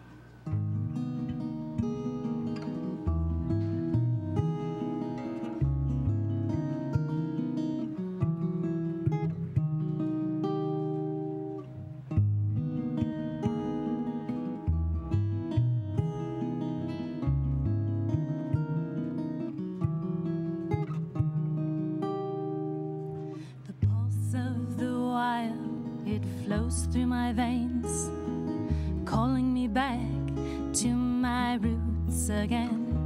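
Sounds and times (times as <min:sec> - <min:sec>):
acoustic guitar fingerpicked and strummed: 0:00.0 - 0:33.0.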